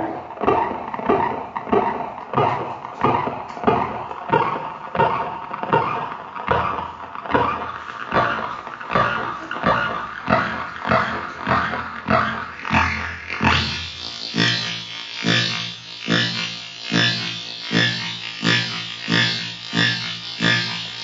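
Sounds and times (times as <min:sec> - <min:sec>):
amplified heartbeat pulses: 0:00.0 - 0:21.0.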